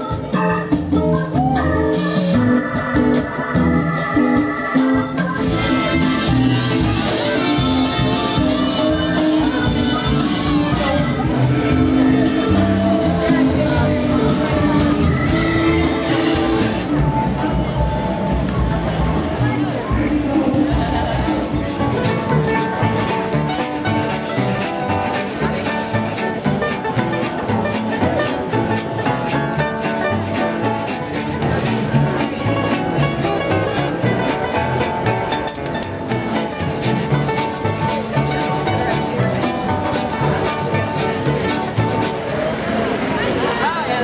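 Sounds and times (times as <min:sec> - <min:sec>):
banjo picking: 0:00.0 - 0:42.6
resonator guitar picking: 0:00.0 - 0:42.6
washtub bass: 0:13.0 - 0:42.4
scraped percussion rhythm: 0:14.9 - 0:42.4.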